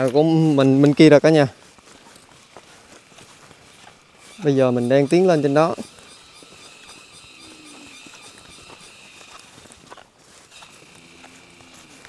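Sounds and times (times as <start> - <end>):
footsteps in sandals on dirt: 0.0 - 12.0
high-pitched background buzz: 3.2 - 9.8.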